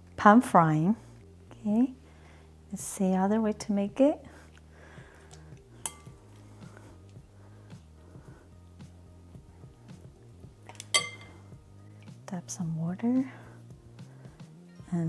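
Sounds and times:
soft background music: 0.0 - 15.0
chopsticks clinking on glass bowl: 10.7 - 11.4.

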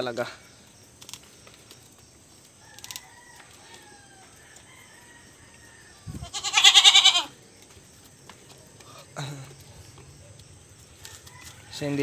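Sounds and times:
loud wavering farm animal call: 5.8 - 7.4
faint high animal calls: 6.1 - 7.4.

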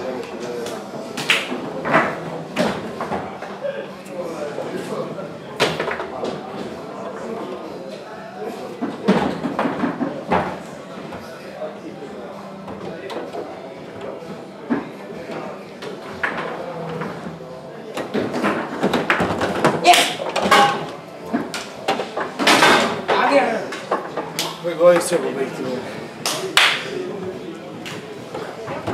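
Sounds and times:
murmur of voices: 0.0 - 28.9
foosball ball clacking: 17.9 - 25.1.

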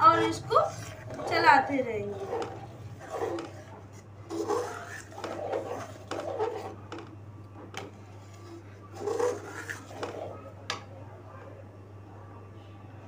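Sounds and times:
spoon stirring and scraping pan: 0.0 - 10.9
steady low hum: 0.0 - 13.0.

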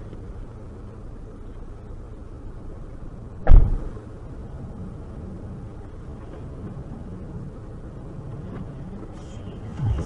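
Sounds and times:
low hum of stationary car: 0.0 - 10.0
car door slamming: 3.4 - 3.9.

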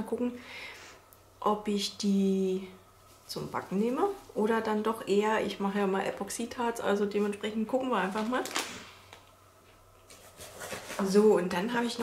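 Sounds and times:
soft rustling: 2.9 - 4.9, 9.6 - 11.5.

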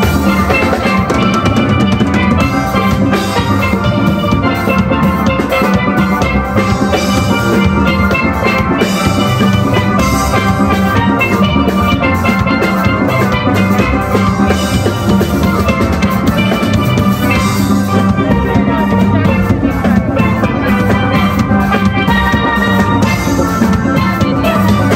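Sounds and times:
steady drum beat: 0.0 - 24.9
steelpans playing a tune: 0.0 - 24.9.

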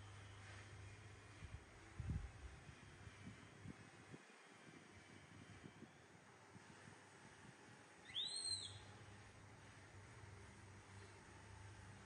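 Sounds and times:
monkey high squeak: 8.1 - 8.8.

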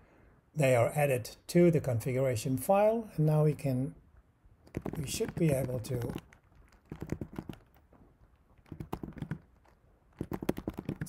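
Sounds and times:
keyboard typing: 4.6 - 7.8, 8.6 - 11.0.

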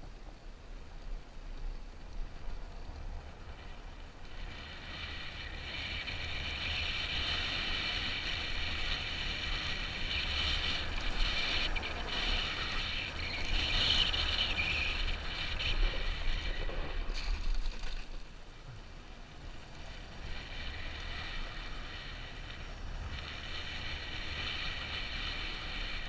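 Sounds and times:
dirt bike engine droning: 2.7 - 26.0.

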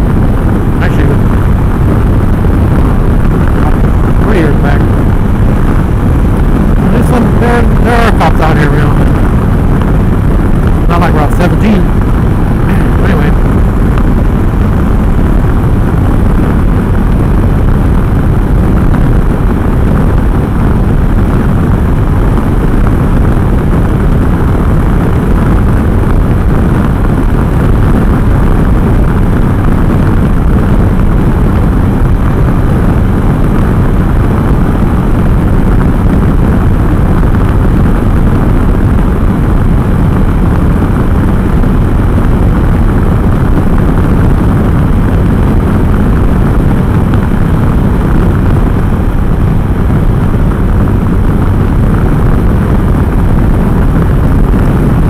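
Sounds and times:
motorcycle engine running: 0.0 - 55.0
wind rush on microphone: 0.0 - 55.0.

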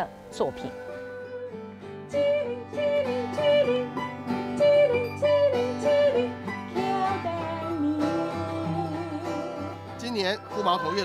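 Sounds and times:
woman singing: 0.0 - 9.9, 10.6 - 11.0
acoustic guitar: 0.0 - 11.0.

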